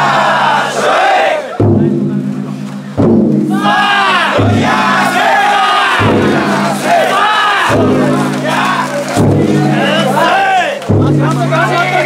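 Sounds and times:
crowd of men chanting: 0.0 - 1.6, 3.5 - 10.8
big drum struck slowly: 1.6 - 12.0.

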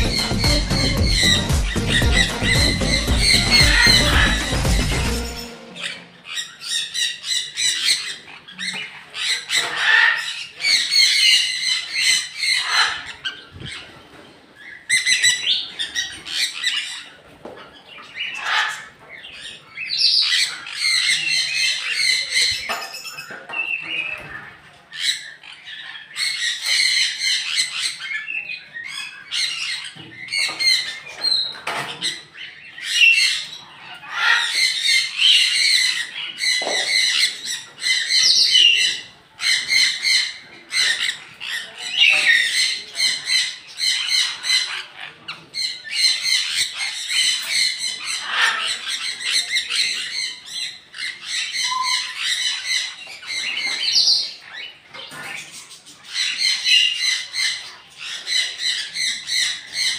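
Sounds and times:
parrots squawking: 0.0 - 59.9.

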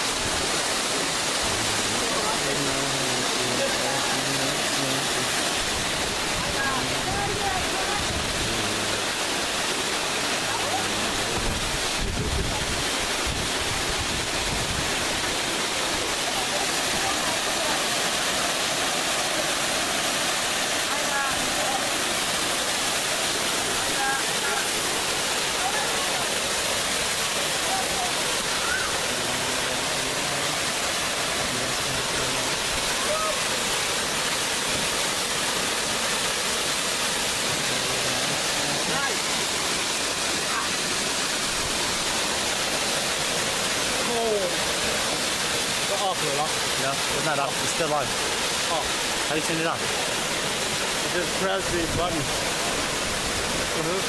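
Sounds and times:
waterfall rushing: 0.0 - 54.0
faint voices: 1.4 - 9.2, 10.2 - 12.7.

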